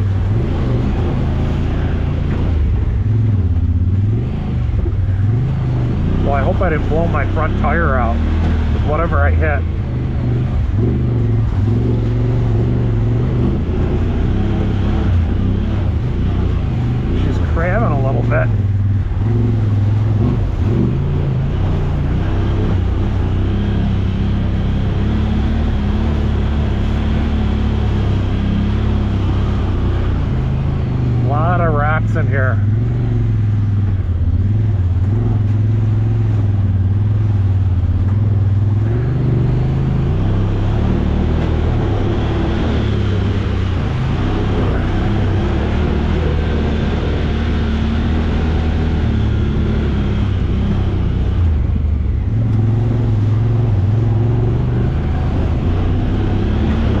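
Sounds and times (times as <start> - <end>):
off-road vehicle engine running: 0.0 - 57.0.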